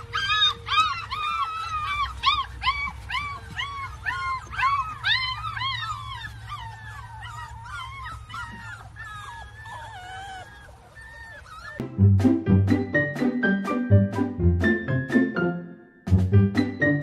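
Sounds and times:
puppy whining: 0.0s - 11.8s.

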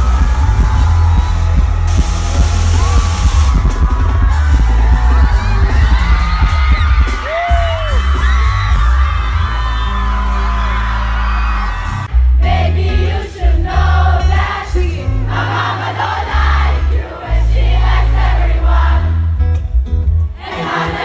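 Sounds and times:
crowd singing and whooping: 0.0s - 19.4s, 20.3s - 21.0s
amplified pop music with bass: 0.0s - 21.0s
singer's voice: 9.3s - 19.1s, 20.4s - 21.0s.

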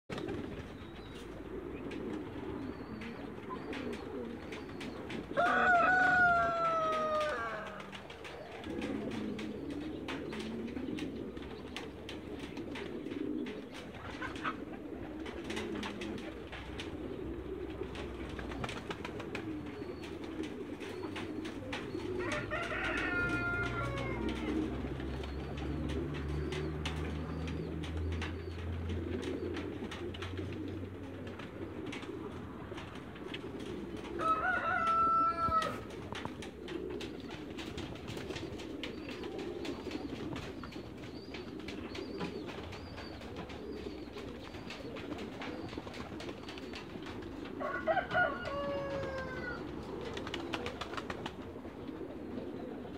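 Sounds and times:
birds cooing: 0.1s - 52.9s
rooster crowing: 5.4s - 7.9s, 22.2s - 24.6s, 34.2s - 35.8s, 47.6s - 49.6s.

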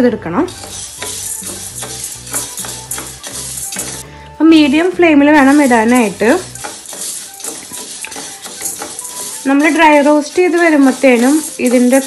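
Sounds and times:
soft background music: 0.0s - 12.0s
lentils rattling in metal pan: 0.3s - 4.0s, 4.6s - 12.0s.

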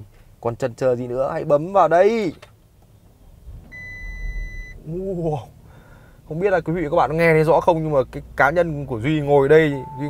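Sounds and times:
car engine starting: 2.2s - 10.0s
electronic beep: 3.7s - 4.8s, 9.7s - 10.0s.

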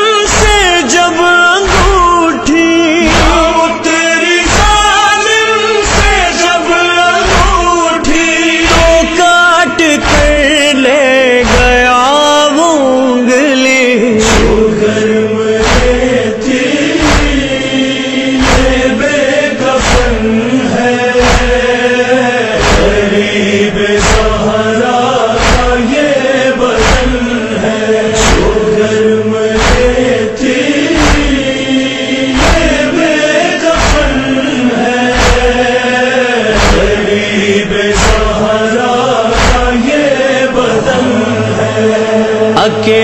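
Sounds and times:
chorus chanting a low drone: 0.0s - 43.0s
short rhythmic thumps: 0.3s - 5.0s, 5.8s - 10.7s, 11.4s - 12.0s, 14.2s - 15.0s, 15.6s - 40.0s.

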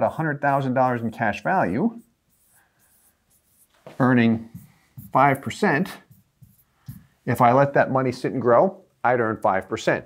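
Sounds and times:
stylus strokes on screen: 0.5s - 7.6s.

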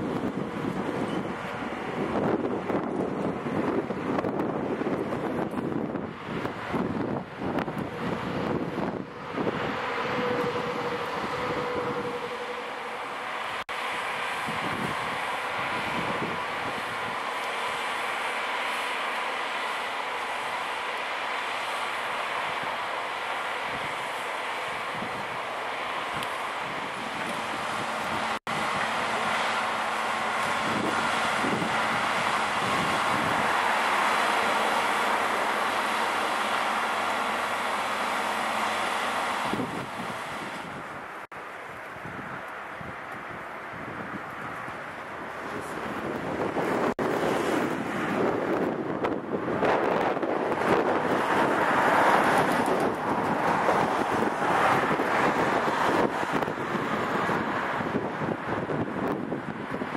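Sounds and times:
diesel engine and machinery running: 0.0s - 59.9s
wind buffeting microphone: 0.0s - 59.9s.

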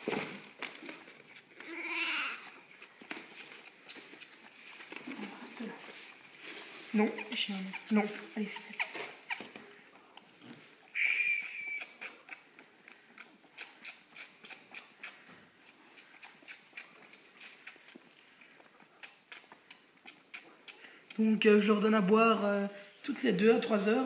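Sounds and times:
lamb sucking from bottle: 0.4s - 21.2s.

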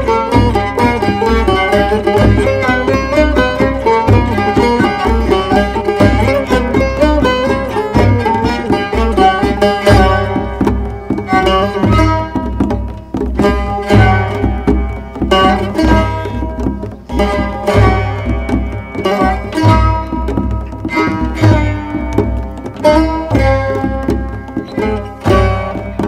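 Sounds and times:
hand drums: 0.0s - 26.0s
plucked string instruments: 0.0s - 26.0s.

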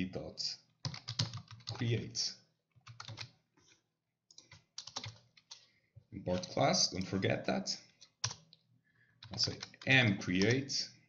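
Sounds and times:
computer keyboard typing: 0.8s - 2.0s, 2.7s - 3.4s, 4.3s - 5.7s, 6.3s - 7.2s, 7.8s - 8.6s, 9.2s - 10.6s.

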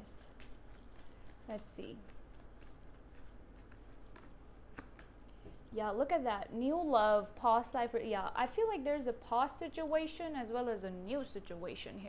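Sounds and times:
cards being handled: 0.0s - 5.7s.

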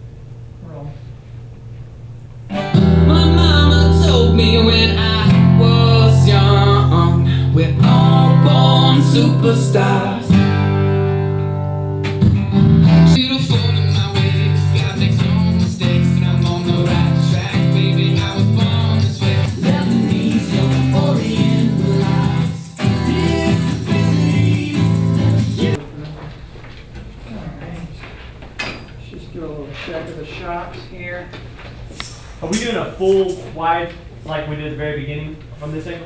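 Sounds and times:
strummed acoustic guitar: 2.5s - 25.8s.

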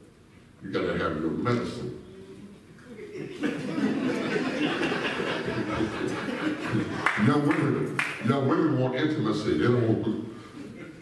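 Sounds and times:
people laughing: 2.8s - 7.3s.

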